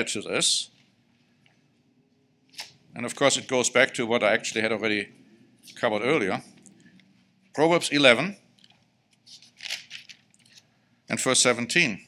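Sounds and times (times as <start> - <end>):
man speaking: 0.0 - 0.8, 2.9 - 6.7, 7.5 - 8.5, 11.1 - 12.0.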